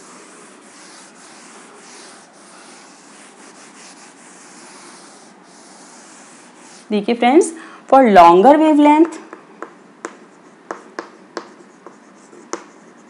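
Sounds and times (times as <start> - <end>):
duster rubbing on chalkboard: 0.0 - 7.0.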